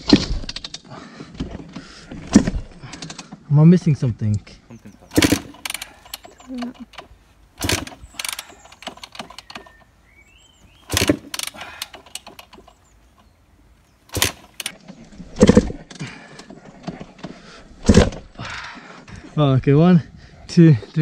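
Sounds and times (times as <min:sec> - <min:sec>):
dirt bike kickstart clunks: 0:00.0 - 0:03.5, 0:05.0 - 0:13.4, 0:14.1 - 0:18.8.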